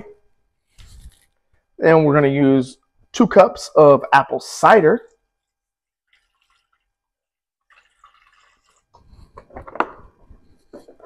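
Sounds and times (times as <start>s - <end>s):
liquid pouring and splashing in pan: 5.8s - 10.2s.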